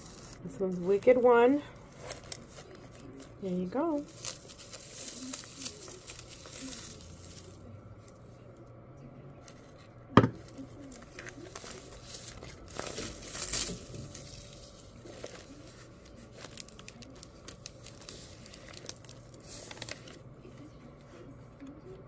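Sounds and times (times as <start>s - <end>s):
paper and ribbon rustling: 0.0s - 8.5s, 9.4s - 21.8s.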